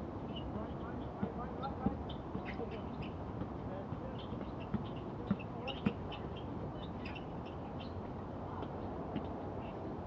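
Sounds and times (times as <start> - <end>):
faint voices: 0.4 - 10.0
shoe squeaks: 2.0 - 3.2, 4.2 - 8.0.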